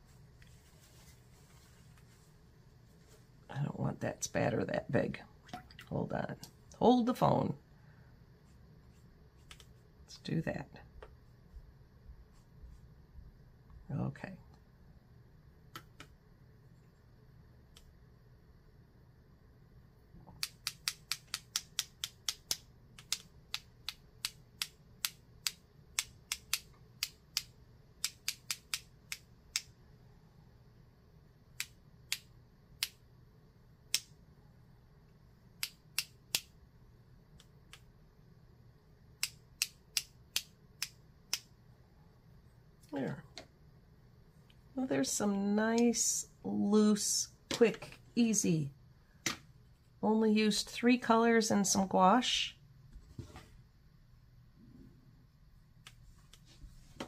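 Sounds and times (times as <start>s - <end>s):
paintbrush tapping clicks: 9.4s - 9.7s, 20.3s - 29.7s.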